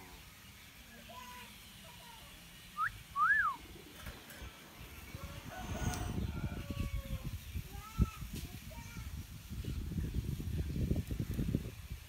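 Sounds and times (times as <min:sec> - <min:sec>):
bird whistling: 0:02.8 - 0:03.7.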